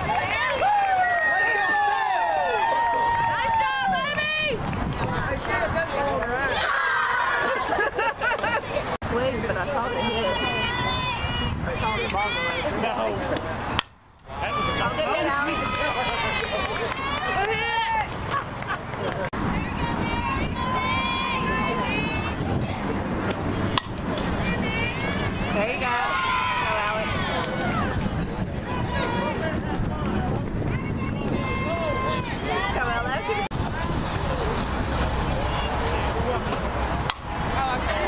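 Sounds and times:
spectators cheering: 0.0 - 5.4, 6.1 - 9.0, 9.8 - 13.1, 14.3 - 22.7, 24.1 - 38.0
softball bat crack: 13.3 - 14.3, 23.2 - 24.3, 36.5 - 37.4
softball bat hitting ball: 23.3 - 24.3, 37.0 - 37.3.

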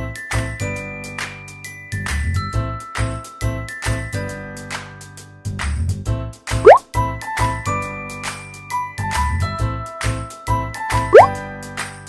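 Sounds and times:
upbeat playful background music: 6.5 - 6.8, 9.1 - 12.0.

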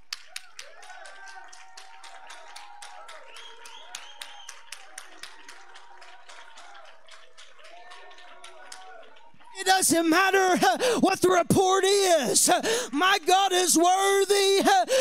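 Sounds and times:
congregation clapping rhythmically: 0.0 - 15.0.

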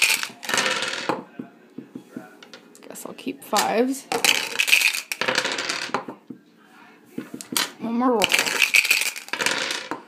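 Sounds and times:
dice rattling in a cup: 0.0 - 1.1, 4.1 - 5.9, 8.2 - 10.0
dice clattering on wooden table: 0.0 - 1.3, 3.6 - 6.2, 7.4 - 10.0.

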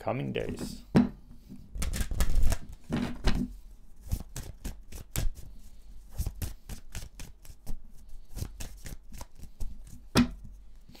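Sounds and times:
cards being shuffled: 1.7 - 10.0.

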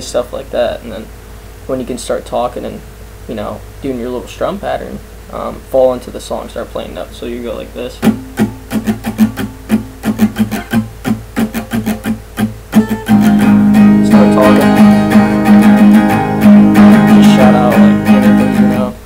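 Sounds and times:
acoustic guitar strumming: 7.4 - 19.0.

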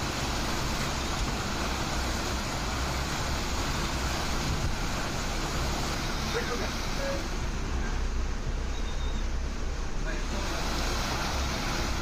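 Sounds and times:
heavy rain rushing: 0.0 - 12.0.

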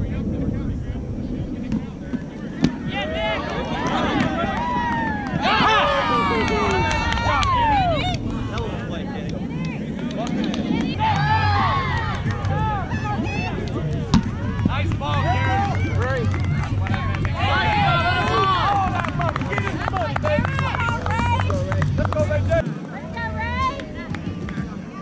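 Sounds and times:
players shouting: 2.5 - 25.0.

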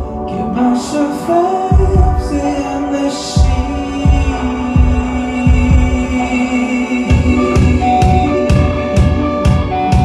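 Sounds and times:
live band playing: 0.0 - 10.0
kick drum beats: 1.7 - 2.4, 3.4 - 6.1.

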